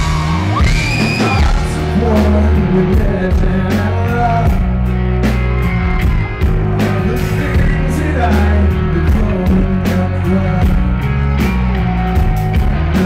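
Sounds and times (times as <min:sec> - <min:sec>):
bass guitar: 0:00.0 - 0:13.0
drums and cymbals: 0:00.0 - 0:13.0
electric guitar: 0:00.0 - 0:13.0
man singing: 0:01.0 - 0:04.9, 0:06.7 - 0:11.1.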